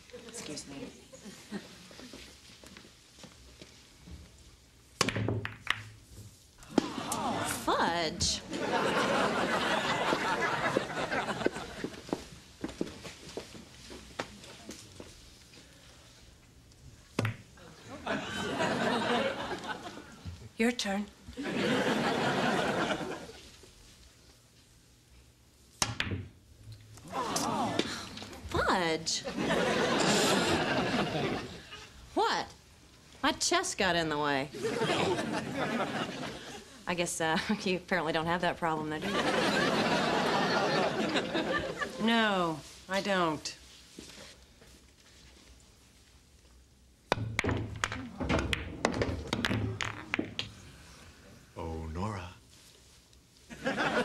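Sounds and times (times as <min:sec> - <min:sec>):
pool cue striking ball: 0:05.0 - 0:05.9, 0:25.8 - 0:26.4, 0:47.1 - 0:50.6
billiard balls clacking: 0:05.0 - 0:06.0, 0:47.1 - 0:50.6
studio audience laughter: 0:08.5 - 0:11.9, 0:17.9 - 0:20.1, 0:21.4 - 0:23.4, 0:29.3 - 0:31.7, 0:34.6 - 0:36.6, 0:39.0 - 0:42.0, 0:53.5 - 0:54.0.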